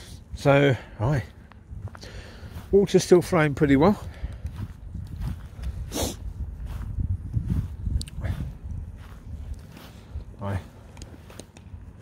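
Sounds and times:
footsteps on tarmac: 0.3s - 12.0s.

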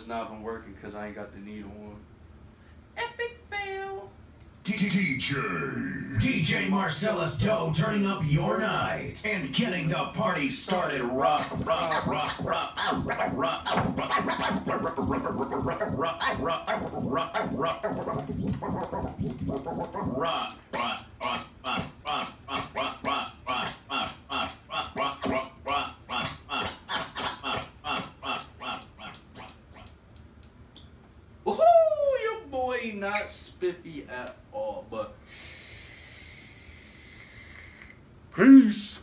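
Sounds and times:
turntable scratching vocal sample: 4.7s - 29.9s.

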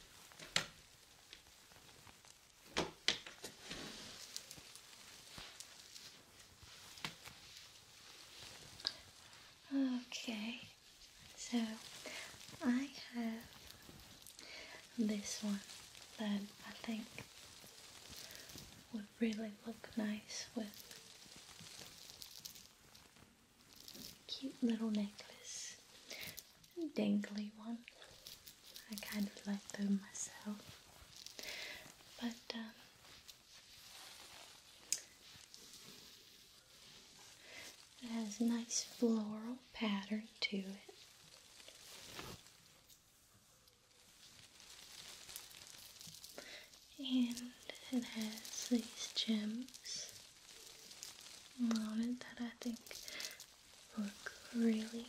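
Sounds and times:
lace fabric rustling: 0.0s - 55.0s
small ticks of beads: 0.0s - 55.0s.

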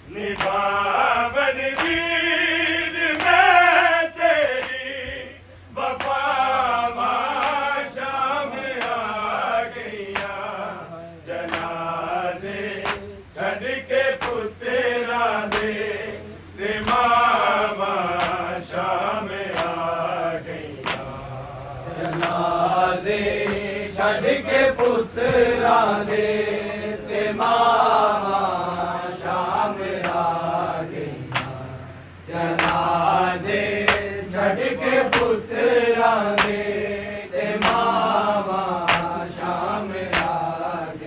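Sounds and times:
men chanting a lament: 0.0s - 41.0s.

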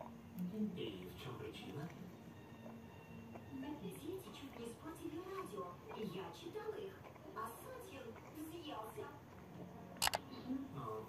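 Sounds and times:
double mouse click: 10.0s - 10.2s.

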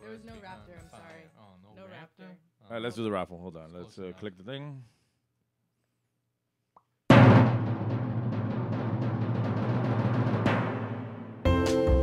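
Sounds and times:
drum roll music: 7.1s - 12.0s.

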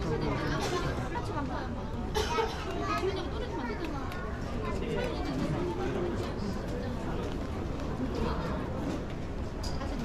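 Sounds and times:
chatter of people: 0.0s - 10.0s
children's voices: 2.2s - 5.5s.

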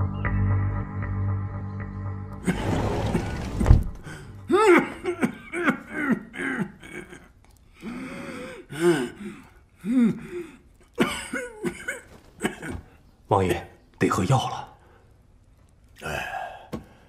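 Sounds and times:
man coughing: 4.5s - 7.3s, 10.9s - 13.0s.

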